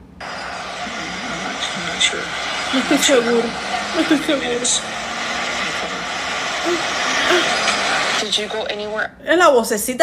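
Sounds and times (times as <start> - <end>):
loud static hiss: 0.0 - 9.1
person speaking: 2.7 - 8.3.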